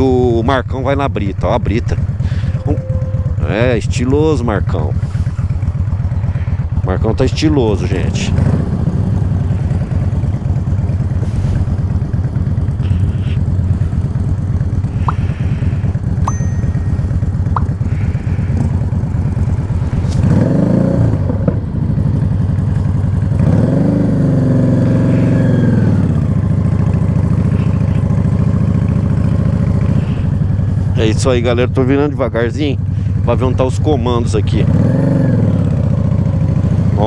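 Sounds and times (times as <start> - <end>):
motorcycle engine idling and revving: 0.0 - 37.0.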